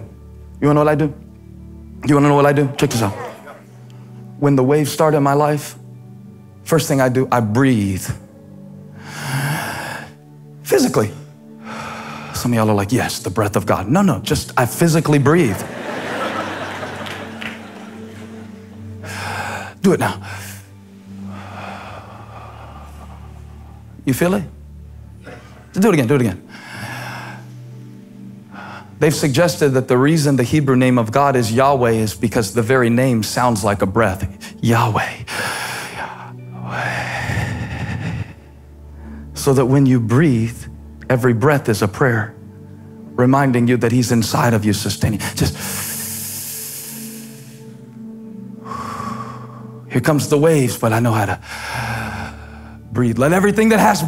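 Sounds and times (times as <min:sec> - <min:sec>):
soft background music chords: 0:00.0 - 0:54.0
crowd breathing together: 0:16.4 - 0:24.0, 0:25.1 - 0:25.7.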